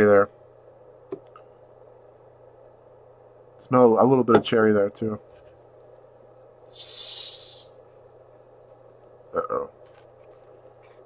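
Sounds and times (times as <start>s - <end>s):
carbonation hiss: 6.6s - 7.8s.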